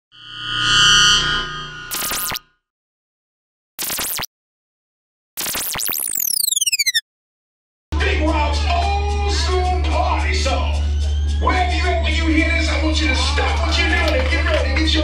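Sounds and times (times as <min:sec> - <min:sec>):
digital glitch bursts: 0:01.9 - 0:02.4, 0:03.8 - 0:04.3, 0:05.4 - 0:07.0.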